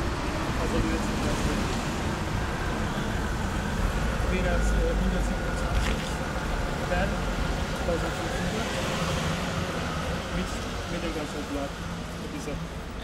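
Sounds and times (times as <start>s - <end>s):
vehicle passing: 0.0s - 12.8s
road traffic rumble and hiss: 0.0s - 13.0s.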